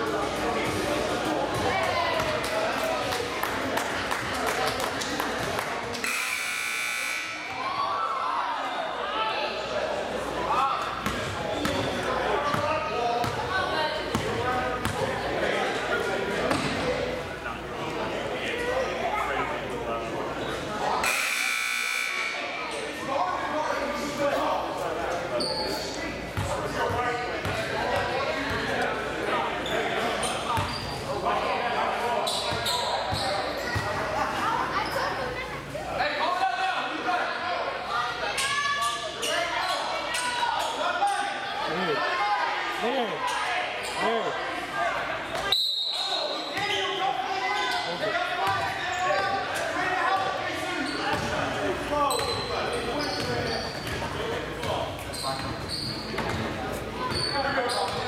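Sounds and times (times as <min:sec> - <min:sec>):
people talking: 0:00.0 - 0:58.0
voices echoing in gymnasium: 0:00.0 - 0:58.0.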